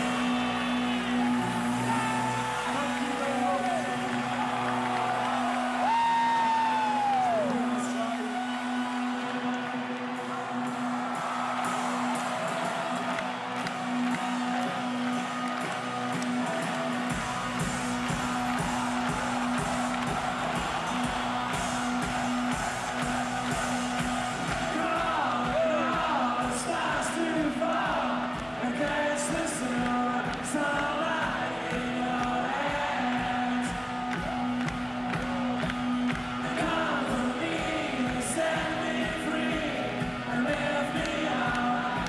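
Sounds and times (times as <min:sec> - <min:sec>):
crowd noise: 0:00.0 - 0:42.0.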